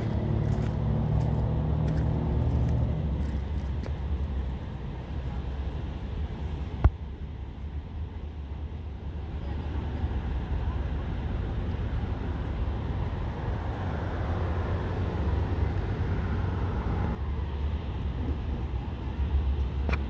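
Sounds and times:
distant vehicles rumbling: 0.0 - 20.0.

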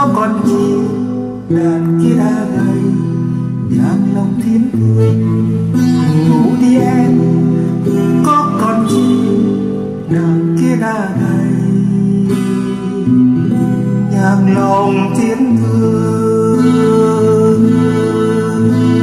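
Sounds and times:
acoustic guitar: 0.0 - 19.0
person singing long notes: 0.0 - 19.0.

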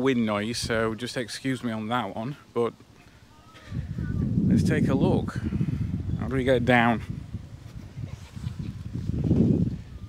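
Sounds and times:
wind buffeting microphone: 0.0 - 1.0, 3.6 - 10.0.

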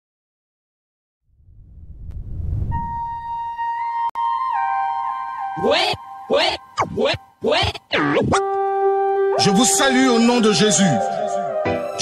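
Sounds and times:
low rumble: 1.3 - 3.7.

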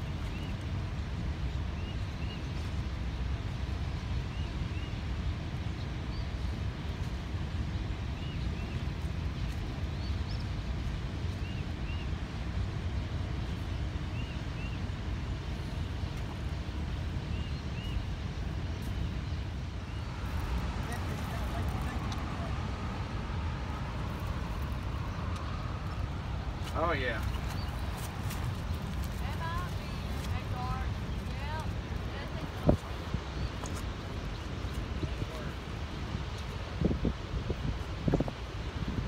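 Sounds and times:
low outdoor rumble: 0.0 - 37.5.

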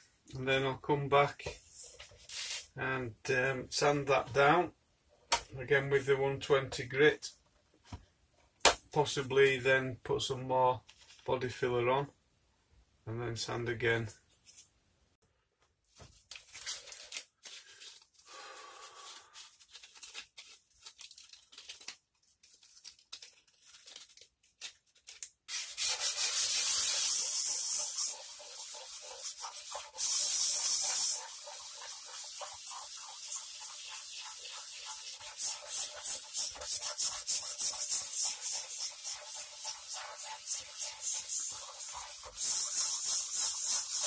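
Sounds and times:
sandpaper rubbing on guitar body: 25.5 - 44.0.

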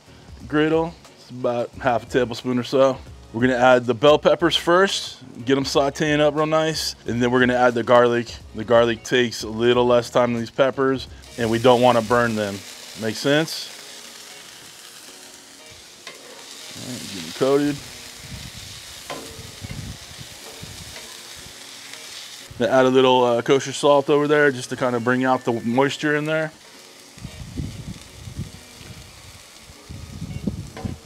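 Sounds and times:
food sizzling on a griddle: 0.0 - 31.0
wind on microphone: 18.2 - 21.0, 27.2 - 29.2, 29.8 - 31.0.

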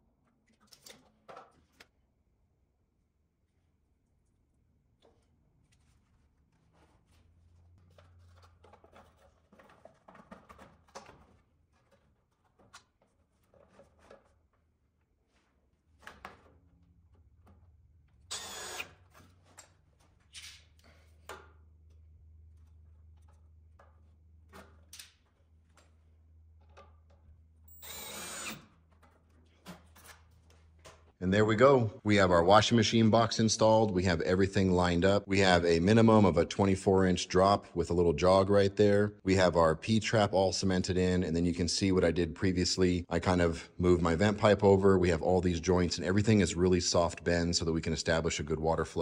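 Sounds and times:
cordless drill driving screws: 18.3 - 19.1, 27.7 - 28.8.

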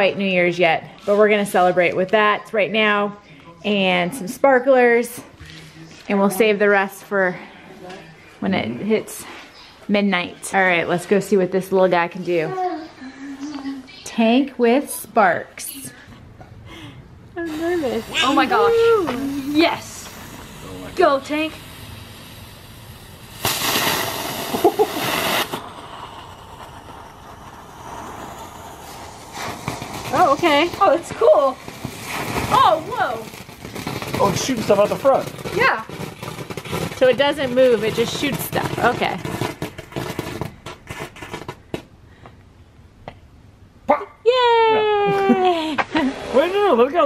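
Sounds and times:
firework hissing: 16.8 - 41.8.

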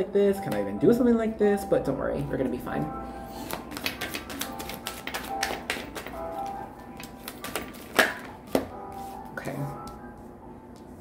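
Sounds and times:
cards being shuffled: 3.4 - 9.2.

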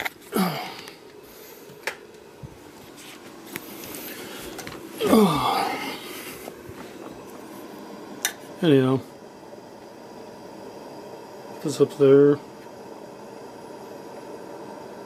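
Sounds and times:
lantern burner hissing: 0.0 - 15.0
low voice sounds: 5.0 - 6.0.

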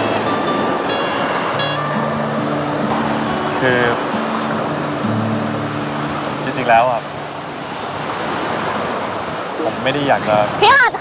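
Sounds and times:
surf washing on beach: 0.0 - 11.0
wind: 0.0 - 11.0.

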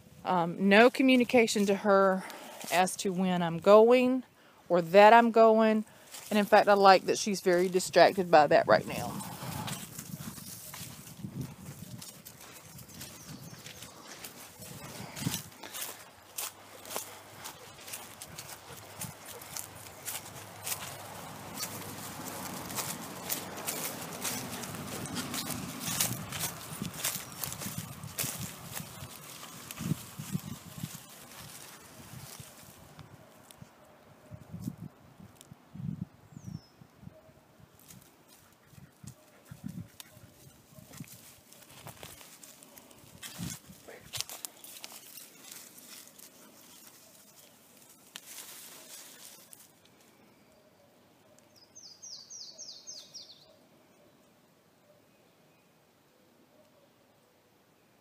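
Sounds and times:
footsteps crunching in dry leaves: 0.9 - 3.2, 5.9 - 33.6, 37.8 - 50.2.

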